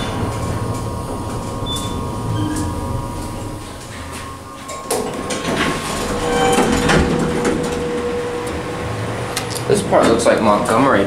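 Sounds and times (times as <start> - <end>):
steady tone: 0.0 - 10.5
elevator car stopping: 0.0 - 11.0
elevator doors sliding open: 0.0 - 11.0.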